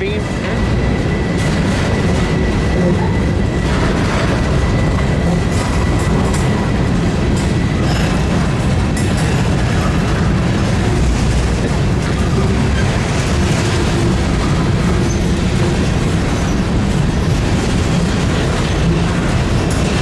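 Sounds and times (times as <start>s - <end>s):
train wheels rumbling on rail: 0.0s - 20.0s
wheel squeal: 14.5s - 15.4s, 16.2s - 17.3s.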